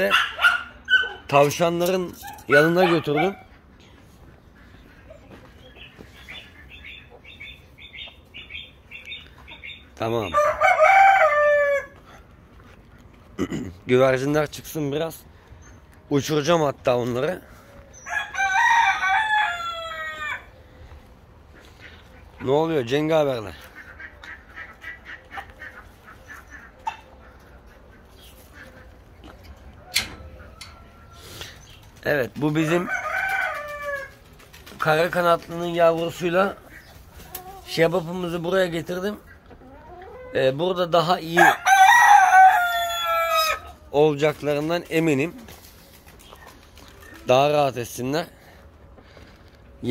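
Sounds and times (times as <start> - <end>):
chickens clucking: 0.0 - 49.9
small birds chirping: 2.1 - 10.4, 12.8 - 18.2, 30.4 - 32.5, 35.5 - 40.5, 44.5 - 48.2.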